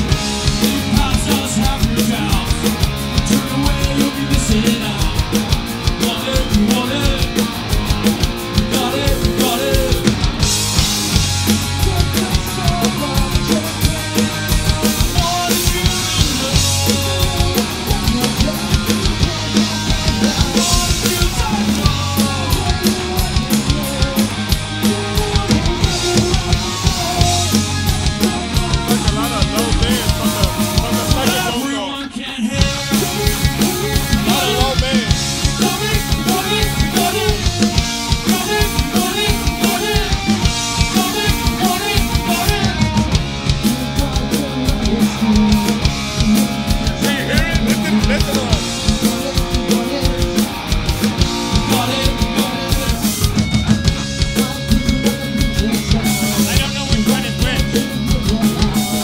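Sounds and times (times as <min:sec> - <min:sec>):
person singing: 0:00.0 - 0:07.5, 0:08.5 - 0:10.4, 0:11.5 - 0:59.0
bass guitar: 0:00.0 - 0:59.0
distorted electric guitar: 0:00.0 - 0:59.0
drum kit: 0:00.0 - 0:59.0.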